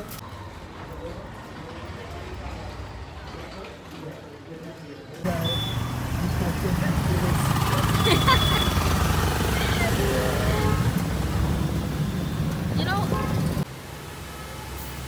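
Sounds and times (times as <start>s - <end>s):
vehicle engine and road noise: 5.2s - 15.0s.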